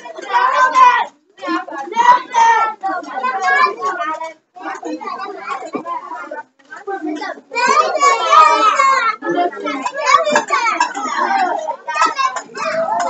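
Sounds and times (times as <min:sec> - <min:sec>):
young children chattering: 0:00.0 - 0:13.0.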